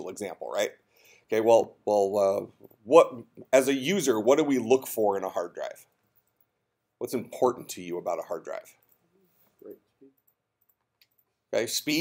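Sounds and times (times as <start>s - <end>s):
soft clicks: 8.8s - 11.3s.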